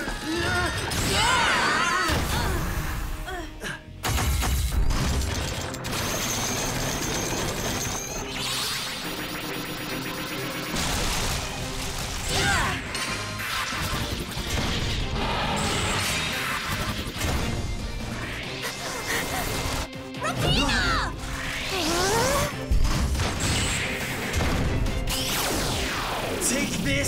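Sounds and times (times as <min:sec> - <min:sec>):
background music: 0:00.0 - 0:27.0.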